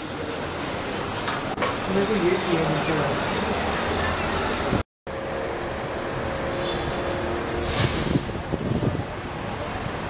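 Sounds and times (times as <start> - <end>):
hum of passing vehicles: 0.5 - 10.0
short hiss: 7.6 - 8.4.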